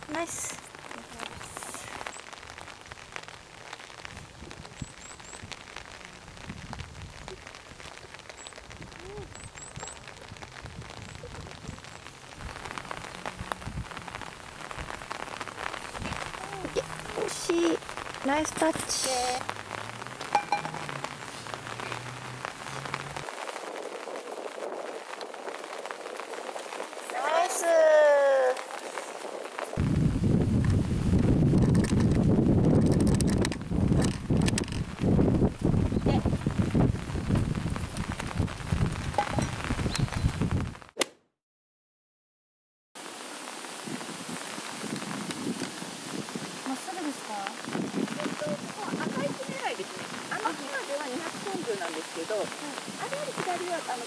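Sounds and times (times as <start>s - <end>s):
women's voices: 0.0s - 2.0s, 16.4s - 19.4s, 27.0s - 28.8s, 46.7s - 47.6s, 48.2s - 54.0s
steady rain: 0.0s - 41.0s, 43.0s - 54.0s.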